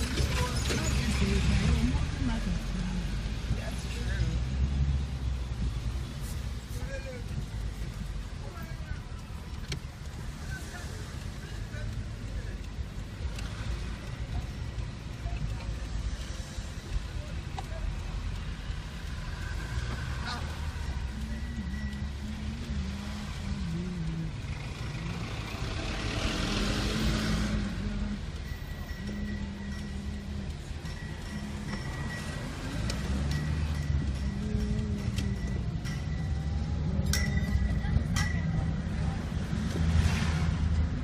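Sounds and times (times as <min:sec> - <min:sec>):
car engine and tyre rumble: 0:00.0 - 0:41.0.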